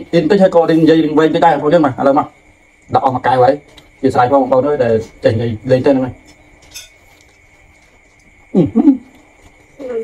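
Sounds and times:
soft food noise: 0:00.0 - 0:10.0.

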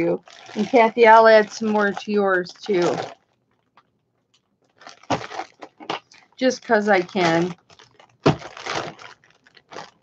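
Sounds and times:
wrapper crinkling rustle: 0:00.0 - 0:10.0.

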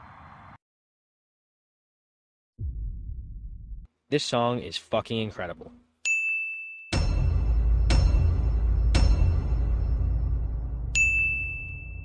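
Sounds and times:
bell-like ding: 0:06.1 - 0:07.3, 0:10.9 - 0:12.0.

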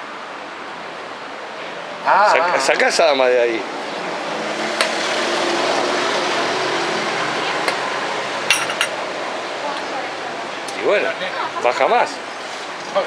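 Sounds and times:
street and bar background noise: 0:00.0 - 0:13.0.

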